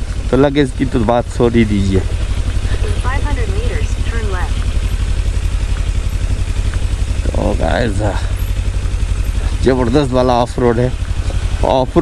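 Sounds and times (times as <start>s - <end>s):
motorcycle engine low revs: 0.0s - 12.0s.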